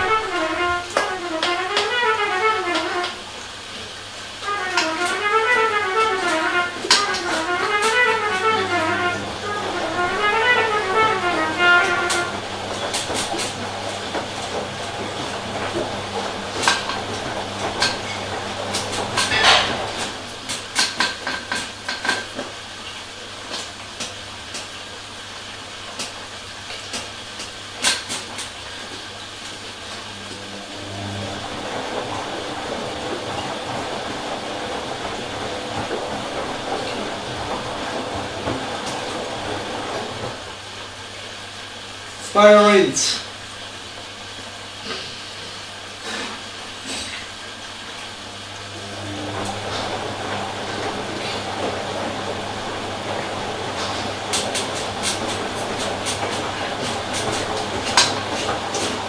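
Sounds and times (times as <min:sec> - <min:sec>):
washing machine motor hum: 0:00.0 - 0:59.0
wet laundry and water swishing: 0:00.0 - 0:59.0
washing machine clicks and knocks: 0:04.5 - 0:22.6, 0:30.1 - 0:40.7, 0:48.8 - 0:59.0.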